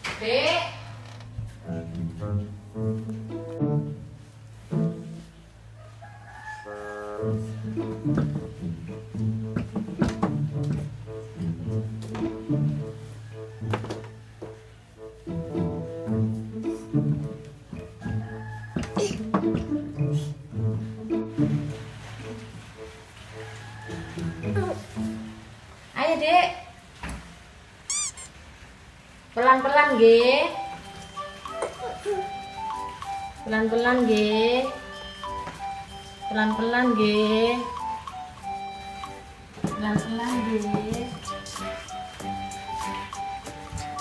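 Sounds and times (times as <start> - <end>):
high-pitched squeal: 27.9 - 28.4.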